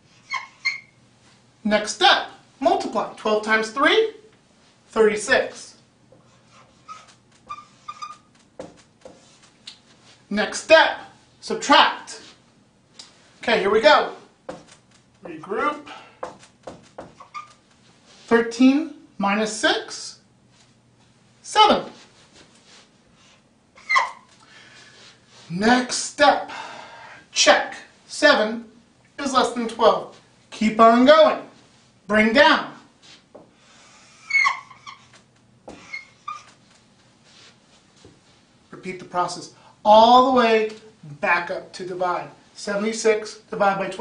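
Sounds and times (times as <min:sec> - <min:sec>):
marker squeaking on whiteboard: 0:00.2 - 0:01.0, 0:06.2 - 0:09.6, 0:16.3 - 0:17.8, 0:23.8 - 0:24.4, 0:34.2 - 0:36.8.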